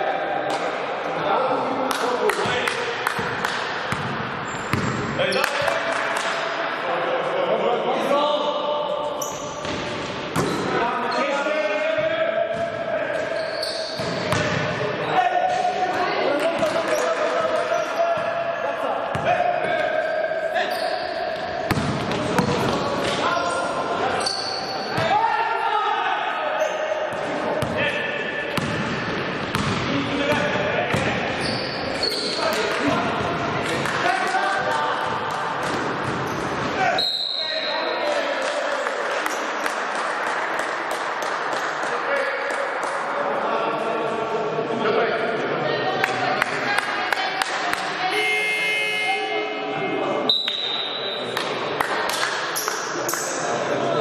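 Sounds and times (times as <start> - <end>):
players' voices: 0.0 - 54.0
basketball bouncing on court: 2.4 - 5.6, 9.6 - 10.6, 14.0 - 14.7, 19.1 - 19.9, 21.7 - 22.8, 28.6 - 31.2.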